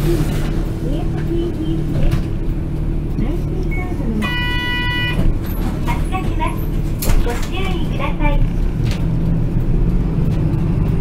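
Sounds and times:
bus engine running: 0.0 - 11.0
steady beep: 3.7 - 5.2.

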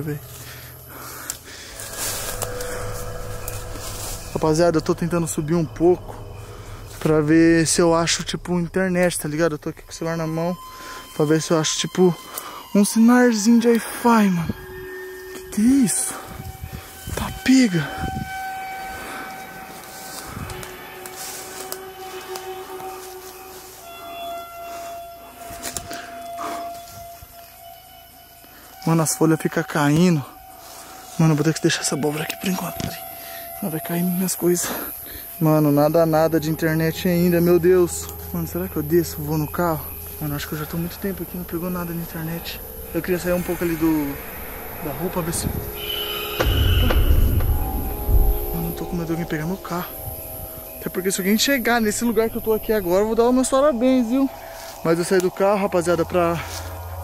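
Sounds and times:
footsteps rustling through dry leaves: 0.0 - 7.6, 9.7 - 57.0
drone music: 0.0 - 57.0
faint steady hum: 0.0 - 57.0.

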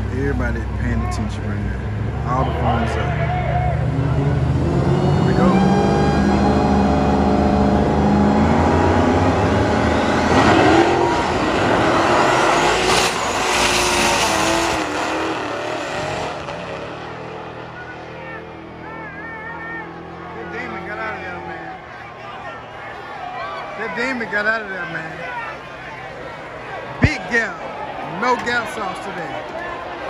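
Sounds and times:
drag car engines revving: 0.0 - 30.0
full throttle engine whine: 0.0 - 30.0.

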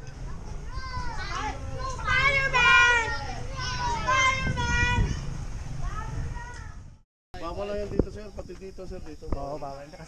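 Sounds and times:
children shouting: 0.3 - 6.8.

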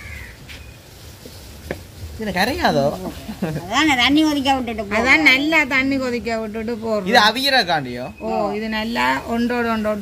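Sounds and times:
crow cawing: 0.0 - 0.4.

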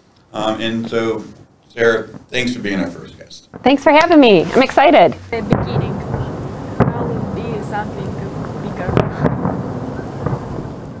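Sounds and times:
fireworks booming: 1.9 - 11.0
sharp firework cracks: 5.3 - 11.0.

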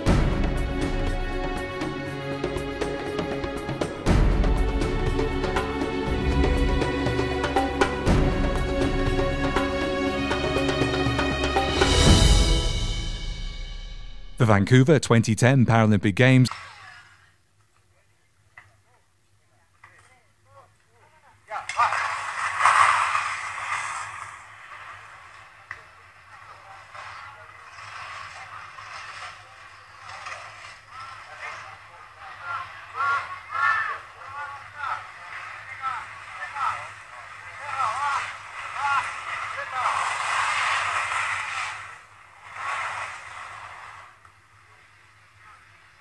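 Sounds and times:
skis scraping on snow: 21.5 - 46.0.

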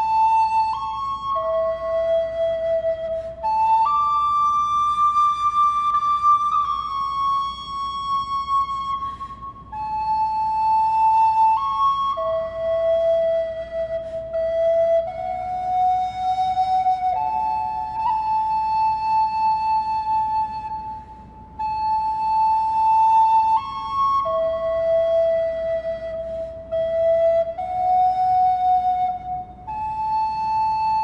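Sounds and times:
wooden recorder notes: 0.0 - 31.0.

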